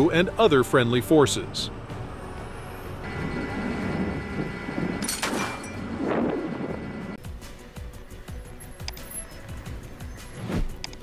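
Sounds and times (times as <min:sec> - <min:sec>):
diesel truck engine running: 0:00.0 - 0:07.2.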